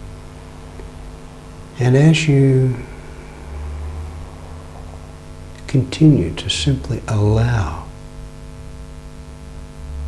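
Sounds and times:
low rumble: 0.0s - 7.1s
electrical mains hum: 0.0s - 10.0s
faint hiss: 0.0s - 10.0s.

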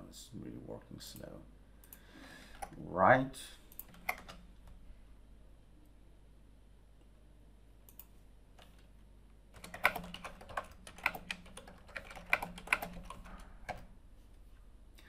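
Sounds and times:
computer keyboard key clicks: 3.7s - 4.4s, 9.6s - 13.9s.

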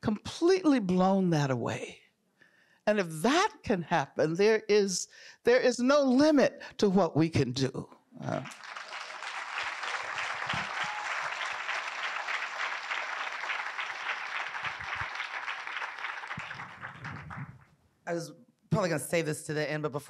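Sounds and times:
audience applauding: 8.3s - 17.7s.

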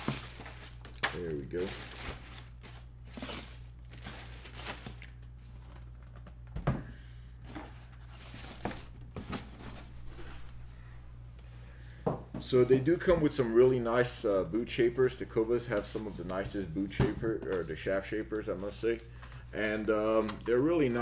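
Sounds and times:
plastic bags crinkling: 0.0s - 6.2s
cardboard packaging rustling: 0.0s - 6.4s, 7.4s - 10.7s
steady low hum: 0.0s - 21.0s.

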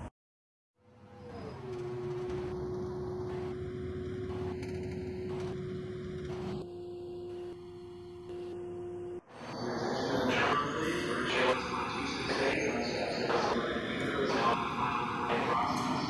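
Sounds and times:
steady electronic tone: 1.4s - 15.7s.

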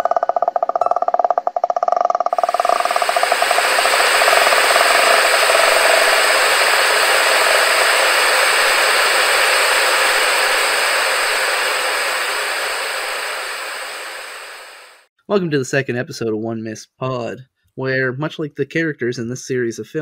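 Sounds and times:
loud static hiss: 2.3s - 15.1s
pulsing tone: 2.3s - 15.1s.

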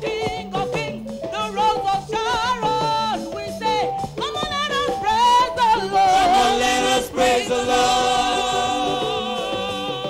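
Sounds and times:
musical accompaniment: 0.0s - 10.0s.

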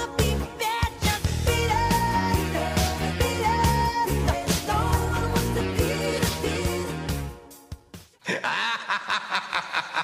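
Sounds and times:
person laughing: 8.2s - 10.0s.

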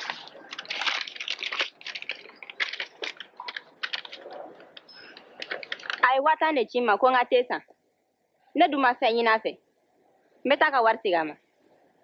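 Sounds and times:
paper crackling and rustling: 0.0s - 6.1s.

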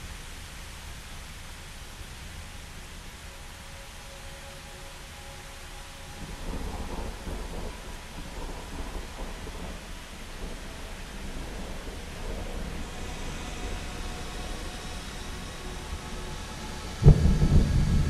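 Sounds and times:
rain-like hiss: 0.0s - 18.0s
rumble of thunder: 6.2s - 18.0s.

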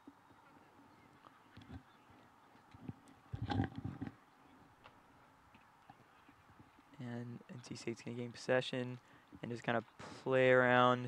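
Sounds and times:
open-air ambience: 0.0s - 11.0s.

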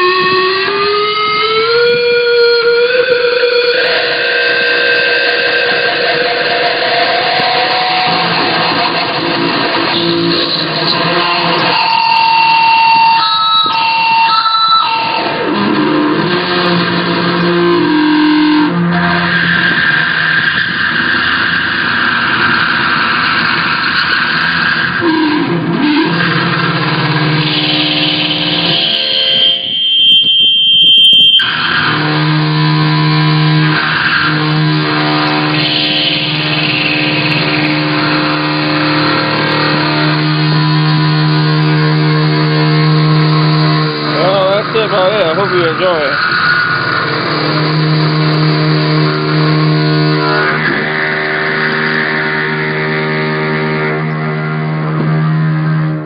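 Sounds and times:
high feedback squeal: 0.0s - 56.0s
sustained electric guitar notes: 0.0s - 56.0s.

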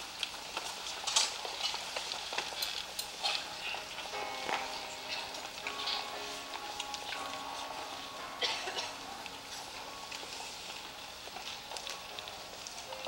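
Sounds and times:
clicks and crackles: 0.0s - 13.0s
sustained instrument notes: 4.0s - 12.7s.

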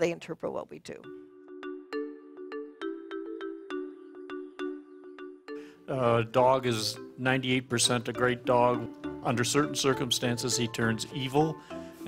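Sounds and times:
bright chiming melody: 1.0s - 12.0s
held chord: 1.2s - 12.0s.

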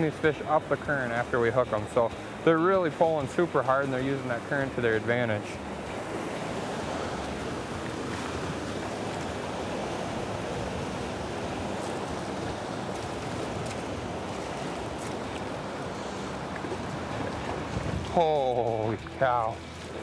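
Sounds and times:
river rushing: 0.0s - 20.0s.

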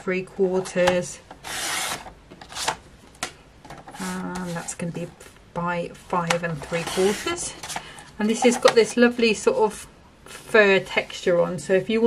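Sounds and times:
paper trimmer slicing cardstock: 1.4s - 2.8s.

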